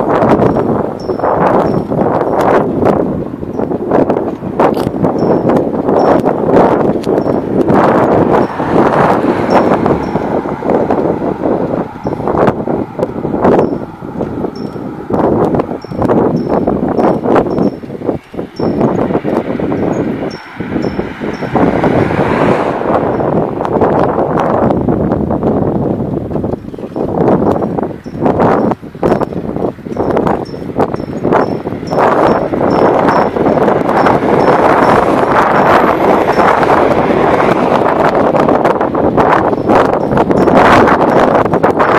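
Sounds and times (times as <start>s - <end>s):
wind buffeting microphone: 0.0s - 41.9s.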